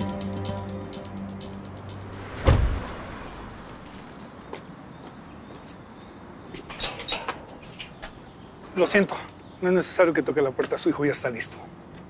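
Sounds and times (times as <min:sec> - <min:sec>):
outdoor background hum: 0:00.4 - 0:12.0.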